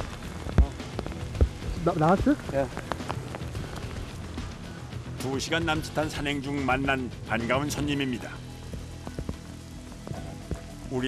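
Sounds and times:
low thumps: 0:00.0 - 0:05.2
rain pattering on leaves: 0:00.0 - 0:11.0.

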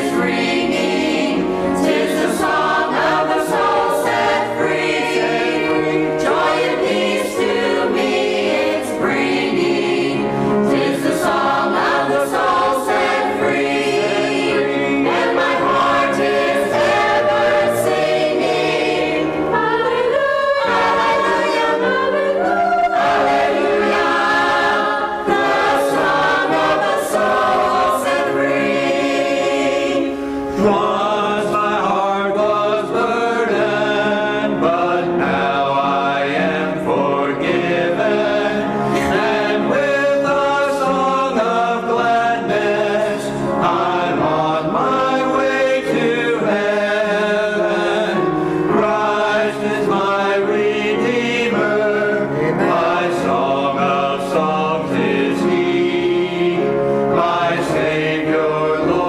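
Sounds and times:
choir singing in parts: 0:00.0 - 0:59.0.

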